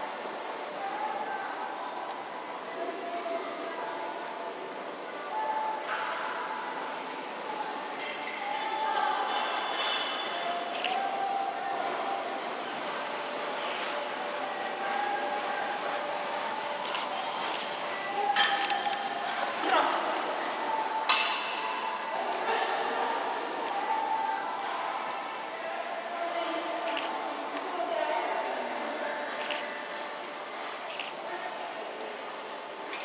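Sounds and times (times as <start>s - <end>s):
indistinct echoing voices: 0.0s - 33.0s.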